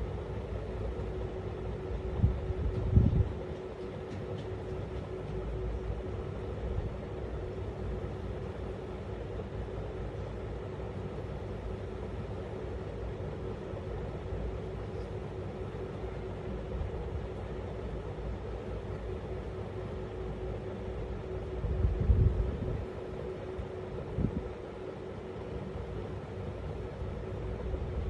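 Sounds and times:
machine rumble and hum: 0.0s - 28.0s.

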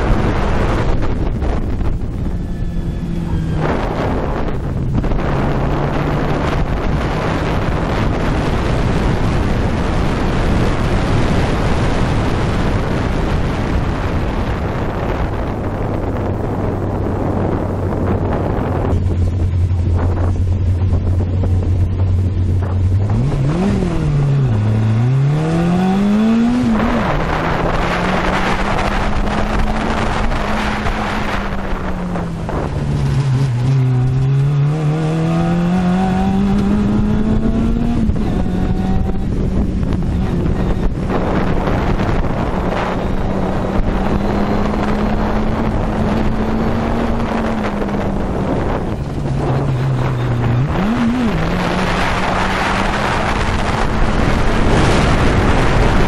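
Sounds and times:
car engine revving: 0.0s - 56.0s
wind buffeting microphone: 0.0s - 56.0s.

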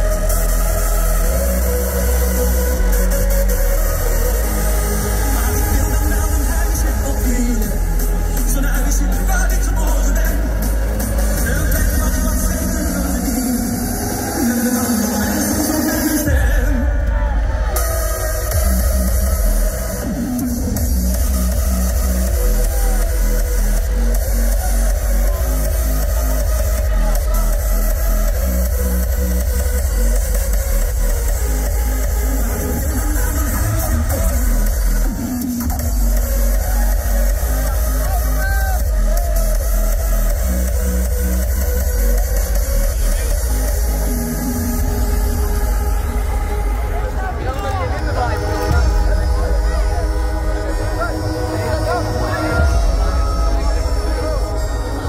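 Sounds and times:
electronic dance music: 0.0s - 55.0s.

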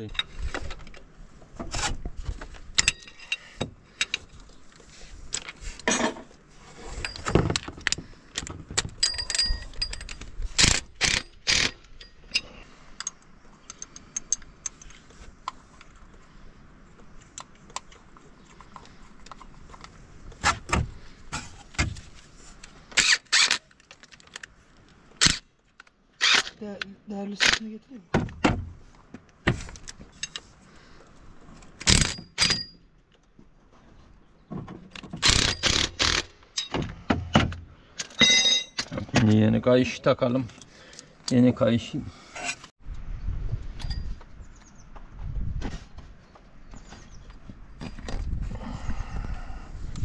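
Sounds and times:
metallic clinks of hand tools: 9.0s - 10.2s, 38.0s - 38.8s.

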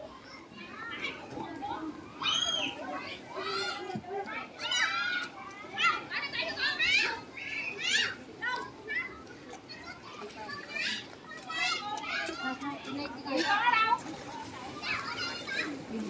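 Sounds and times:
children calling and chattering: 0.0s - 16.0s
crowd of adults talking: 0.0s - 16.0s.

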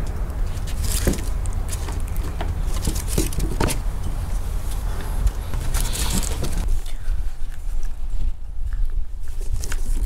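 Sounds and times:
puppy paws pattering on wooden boards: 0.0s - 3.9s, 5.0s - 6.7s.

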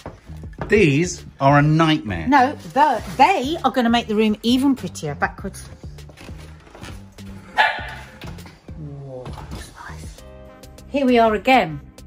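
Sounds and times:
background music: 0.0s - 12.0s
dog barking: 7.5s - 8.2s.

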